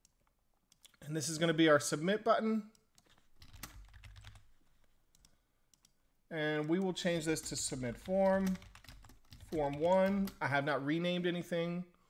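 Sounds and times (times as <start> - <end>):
typing on computer keyboard: 2.8 - 4.5, 6.7 - 10.4.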